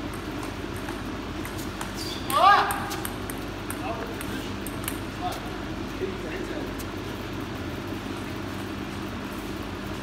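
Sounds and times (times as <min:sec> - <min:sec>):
table tennis ball clicking: 0:00.1 - 0:05.0
player shouting: 0:02.3 - 0:02.9.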